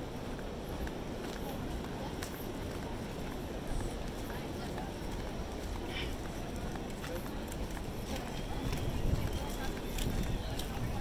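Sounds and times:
babble of people talking: 0.0s - 11.0s.

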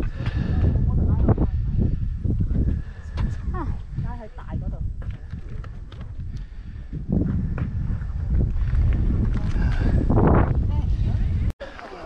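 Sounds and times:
wind rumbling on microphone: 0.0s - 11.6s.

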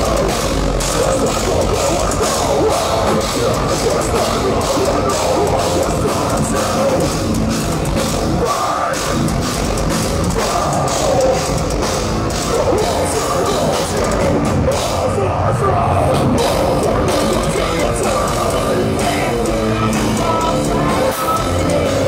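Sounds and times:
metalcore band playing live: 0.0s - 22.0s
singer's voice: 0.0s - 22.0s.

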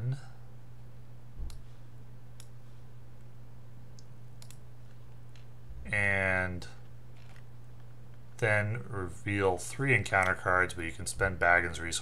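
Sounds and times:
steady low hum: 0.0s - 12.0s
computer mouse clicking: 2.4s - 2.6s, 4.0s - 5.5s.

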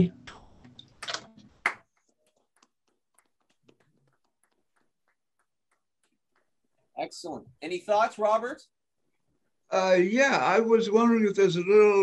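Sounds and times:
hand clapping over video call: 0.7s - 7.2s.

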